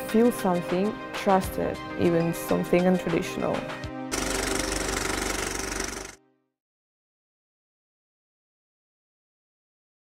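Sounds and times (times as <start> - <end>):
loud mechanical rattle: 4.1 - 6.2.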